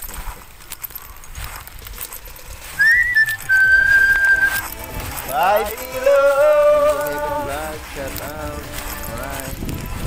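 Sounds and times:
high clear whistle: 0:02.8 - 0:04.7.

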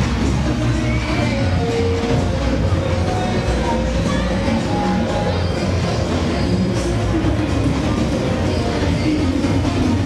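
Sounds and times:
music playing: 0:00.0 - 0:10.0.

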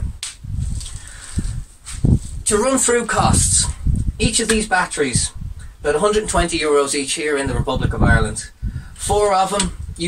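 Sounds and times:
rustling and shuffling: 0:00.4 - 0:02.7.

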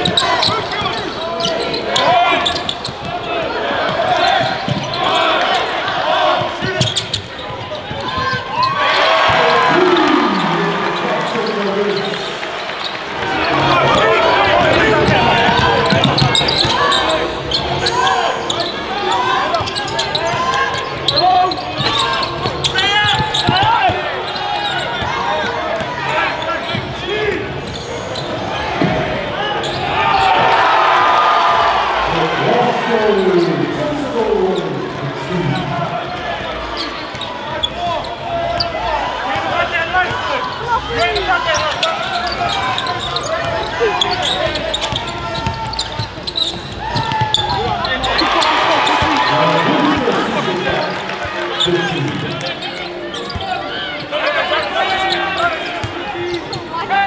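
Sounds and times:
sneakers squeaking: 0:00.0 - 0:30.7, 0:34.6 - 0:57.0
indistinct voices: 0:40.0 - 0:56.6
basketball bouncing on wooden court: 0:44.3 - 0:47.8.

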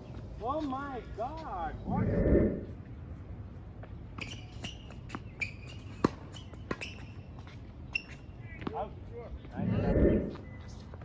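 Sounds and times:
shoes squeaking on court: 0:04.1 - 0:08.8.

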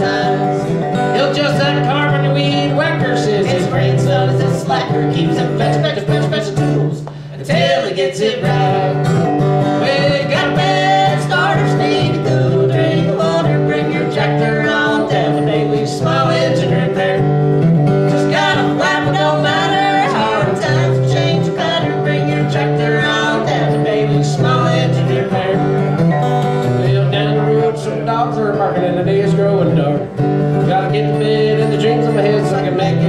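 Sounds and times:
acoustic guitar strummed: 0:00.0 - 0:33.0
person singing: 0:00.0 - 0:33.0.

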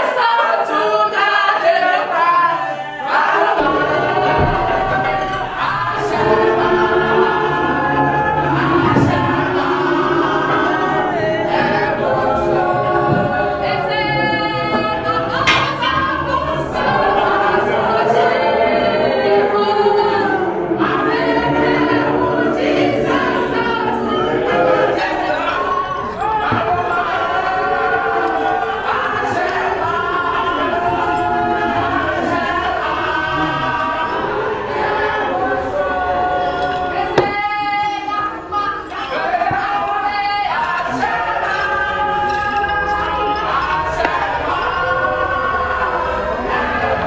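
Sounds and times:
group of voices singing: 0:00.0 - 0:47.0.

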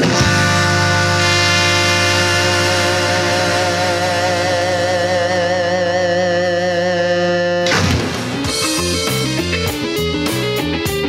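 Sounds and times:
cymbal crash: 0:00.0 - 0:05.2
electric guitar sustained chord: 0:00.0 - 0:07.7
blues rock band chord: 0:00.0 - 0:11.0.

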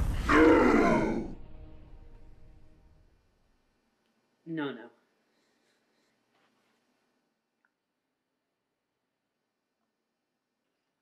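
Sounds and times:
loud noisy rumbling effect: 0:00.0 - 0:02.7.

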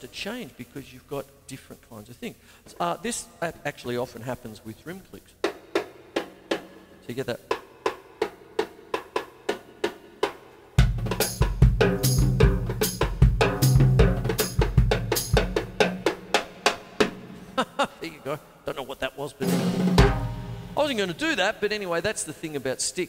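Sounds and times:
drum kit groove: 0:03.8 - 0:22.3.

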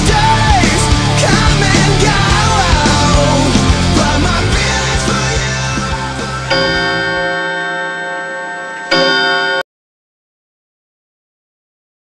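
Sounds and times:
bell tolling: 0:05.1 - 0:09.7.

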